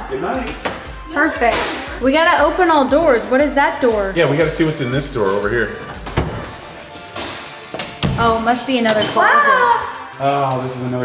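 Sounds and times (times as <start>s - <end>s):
music: 0.0s - 11.0s.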